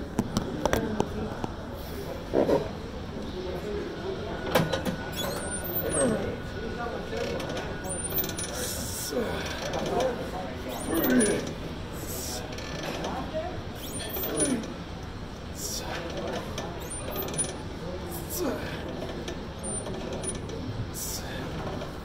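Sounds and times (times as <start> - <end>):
gym background noise: 0.0 - 22.0
exercise machine creaking and clanking: 7.1 - 8.7, 9.3 - 11.6, 12.2 - 14.8, 15.9 - 17.7, 18.4 - 20.7.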